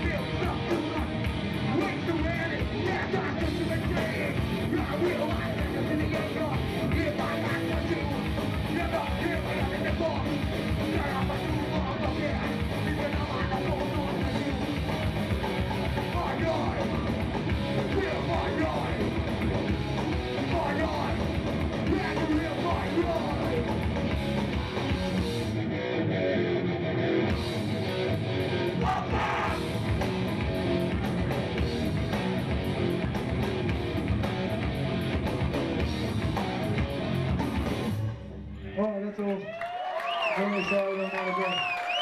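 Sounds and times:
punk band playing live: 0:00.0 - 0:38.3
person shouting vocals: 0:28.8 - 0:29.6.

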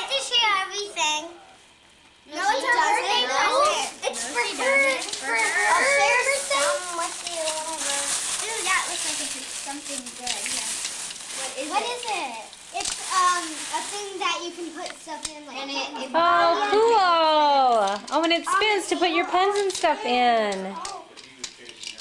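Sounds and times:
young children chattering: 0:02.3 - 0:17.0, 0:18.1 - 0:21.1
paper rustling and crinkling: 0:03.5 - 0:15.3.

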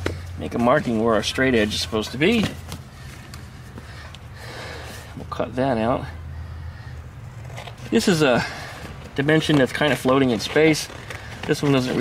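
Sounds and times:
cardboard handling sounds: 0:08.8 - 0:12.0.

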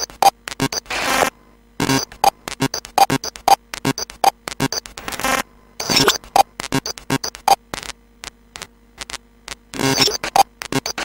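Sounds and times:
buzzy pitched tone: 0:00.0 - 0:07.6, 0:09.8 - 0:11.0
electrical hum: 0:00.0 - 0:11.0
glitchy electronic clicks: 0:00.0 - 0:11.0.

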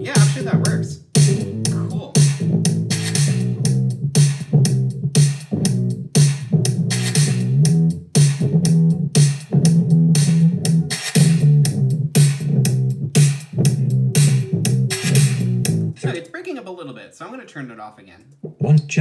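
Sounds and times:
bass line loop: 0:00.0 - 0:16.2
looped drum groove: 0:00.0 - 0:16.4.

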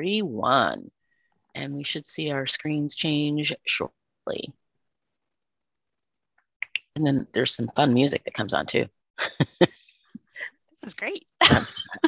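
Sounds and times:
woman speaking: 0:00.0 - 0:00.9, 0:01.6 - 0:04.6, 0:06.6 - 0:09.7, 0:10.8 - 0:12.0.

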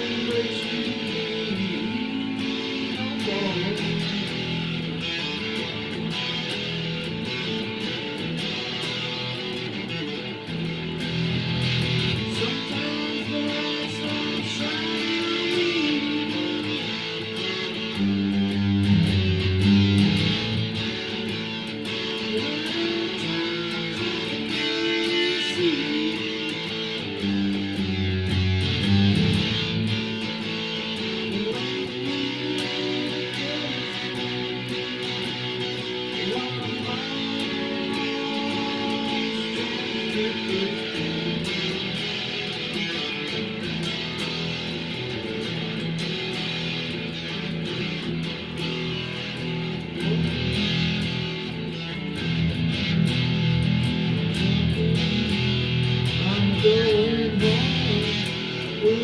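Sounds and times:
electric guitar strummed and picked: 0:00.0 - 0:59.0.

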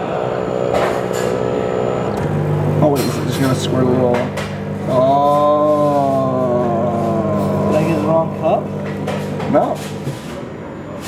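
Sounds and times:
coffee machine humming: 0:00.0 - 0:11.0.

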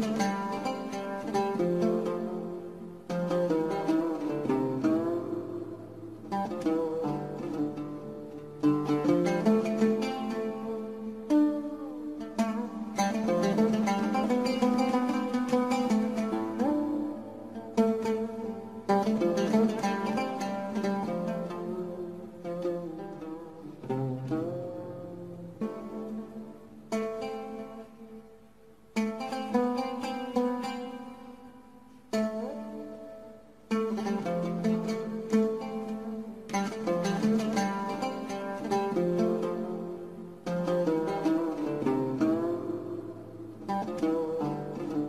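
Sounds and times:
plucked string instrument: 0:00.0 - 0:45.0.

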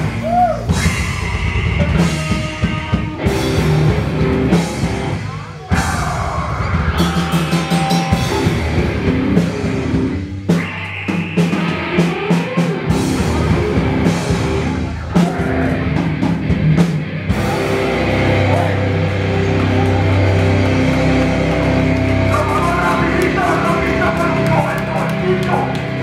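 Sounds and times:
bass guitar: 0:00.0 - 0:26.0
distorted electric guitars: 0:00.0 - 0:26.0
drum kit: 0:00.0 - 0:26.0.

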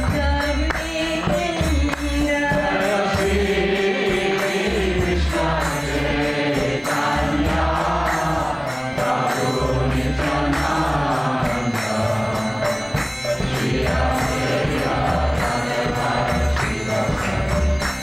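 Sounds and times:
drum beat: 0:00.0 - 0:18.0
small hand cymbals: 0:00.0 - 0:18.0
group chanting a mantra: 0:01.0 - 0:18.0.

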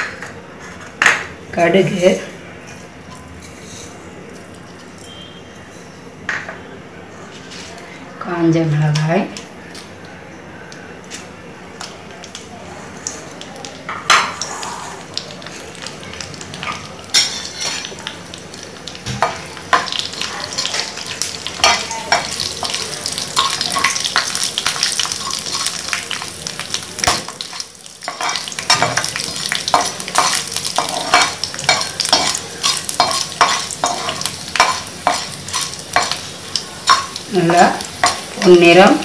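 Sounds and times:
oil sizzling in a pan: 0:12.1 - 0:39.0.

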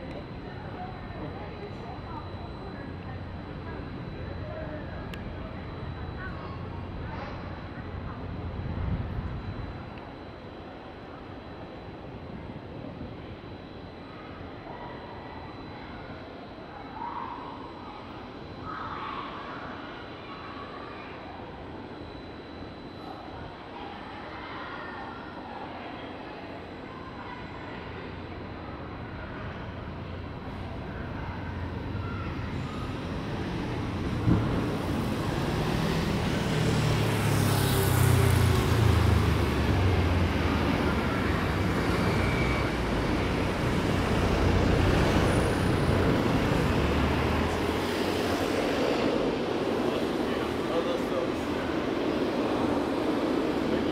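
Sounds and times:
bus engine rumble: 0:30.0 - 0:52.2.

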